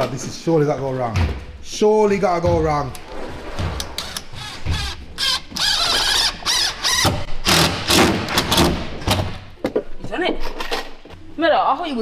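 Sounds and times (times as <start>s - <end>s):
cordless drill driving screws: 4.0s - 8.6s
knocks: 4.6s - 5.0s.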